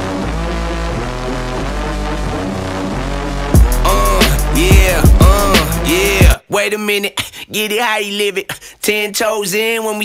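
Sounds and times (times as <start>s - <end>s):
instrumental background music: 0.0s - 6.4s.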